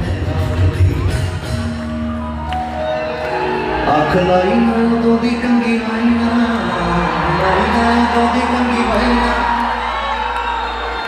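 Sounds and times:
live concert music with heavy bass: 0:00.0 - 0:11.0
audience whooping: 0:01.9 - 0:11.0.

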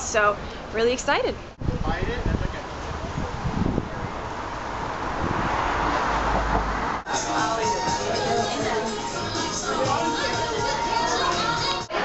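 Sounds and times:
street traffic noise: 0:00.0 - 0:12.0
vehicle passing: 0:02.6 - 0:07.2.

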